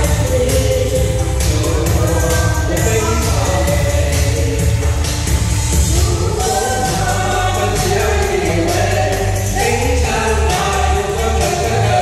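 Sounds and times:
people singing into microphones: 0.0s - 12.0s.

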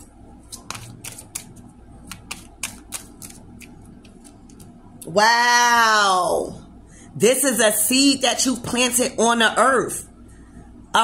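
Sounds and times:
cards being shuffled: 0.4s - 4.7s.

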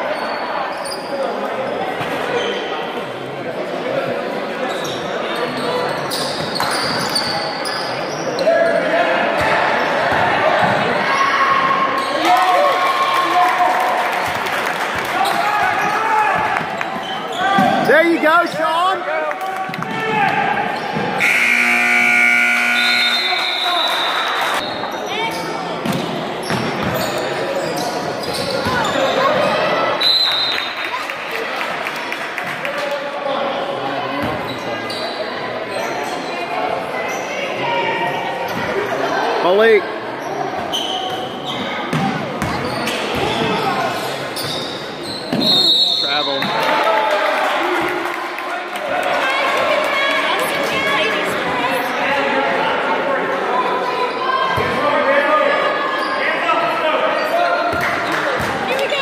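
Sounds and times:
spectators talking and calling out: 0.0s - 59.0s
sneakers squeaking: 0.2s - 2.7s, 4.6s - 8.8s, 15.2s - 18.6s, 20.7s - 30.4s, 34.2s - 37.5s, 40.2s - 46.6s
steady horn tone: 21.2s - 23.5s.

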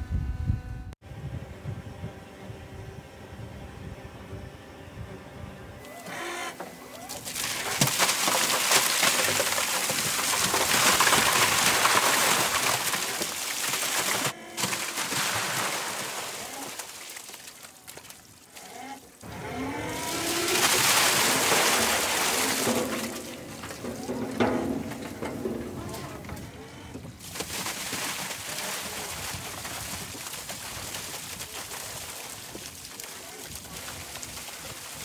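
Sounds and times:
wet fish slithering and splashing: 7.0s - 24.5s, 27.2s - 35.0s.

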